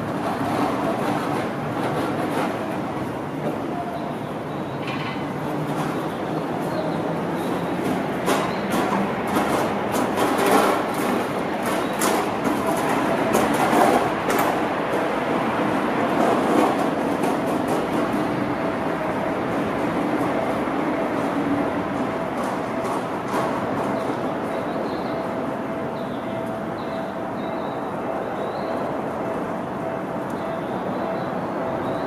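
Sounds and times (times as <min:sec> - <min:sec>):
train wheels clacking over rail joints: 0:00.0 - 0:03.7, 0:04.7 - 0:18.8, 0:19.6 - 0:25.1
train rumble: 0:00.0 - 0:32.0.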